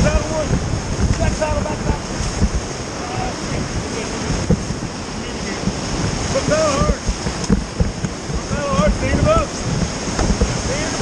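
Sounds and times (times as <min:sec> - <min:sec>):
low thumps: 0:00.0 - 0:11.0
whitewater rapids rushing: 0:00.0 - 0:11.0
wind buffeting microphone: 0:00.0 - 0:11.0.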